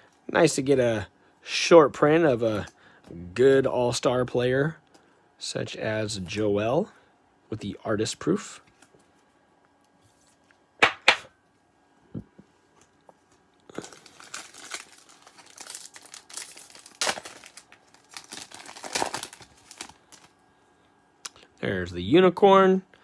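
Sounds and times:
wrapper tearing and crinkling: 13.7 - 20.3.

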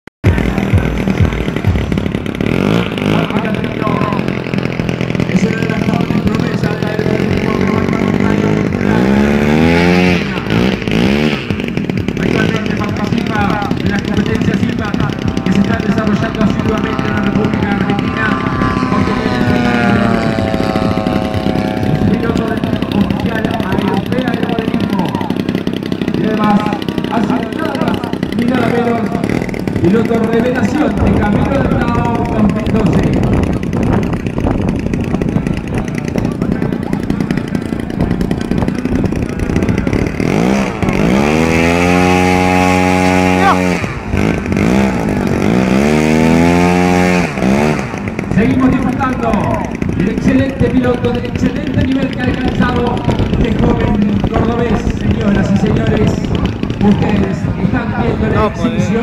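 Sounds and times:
model airplane engine: 0.2 - 59.0.

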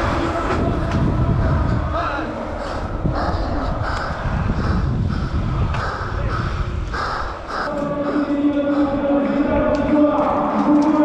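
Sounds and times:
wind rushing over camera: 0.0 - 11.0.

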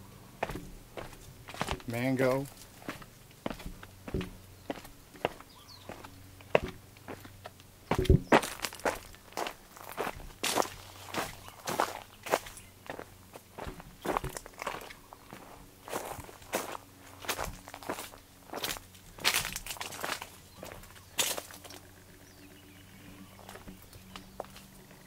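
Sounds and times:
footsteps on dry leaf litter: 0.0 - 21.8, 23.3 - 24.8.

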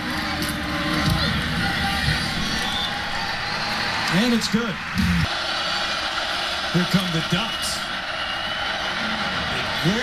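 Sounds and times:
stadium crowd roar: 0.0 - 10.0.

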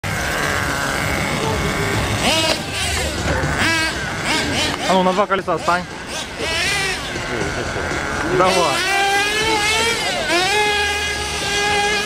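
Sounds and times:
model car motor whine: 0.0 - 12.0.

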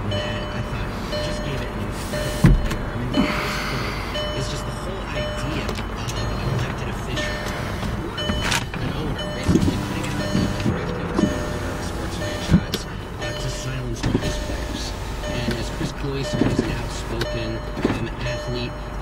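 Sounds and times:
talk radio playing low: 0.0 - 18.9
car cabin hum: 0.0 - 19.0
clicks and knocks of controls: 0.1 - 3.0, 5.1 - 19.0.

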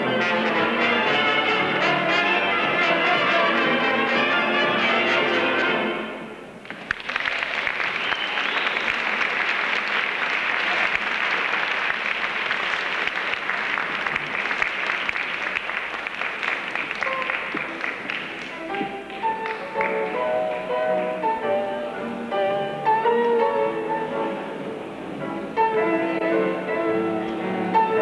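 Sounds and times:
jazz band playing: 0.0 - 6.3, 17.0 - 28.0
audience applauding: 6.6 - 21.2.

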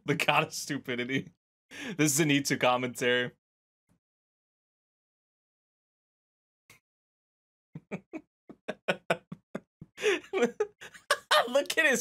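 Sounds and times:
man laughing in rapid bursts: 7.8 - 11.7
person talking: 10.0 - 12.0.

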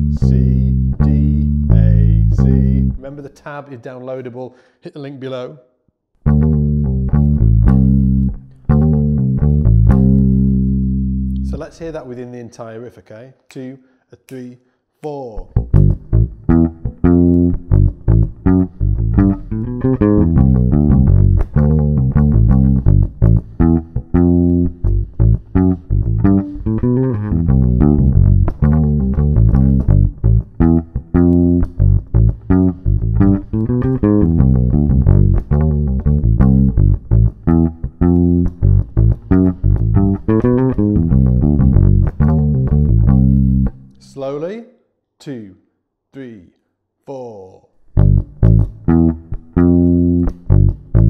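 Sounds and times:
electric bass rock riff: 0.0 - 3.0, 6.2 - 11.6, 15.6 - 43.9, 47.9 - 51.0.

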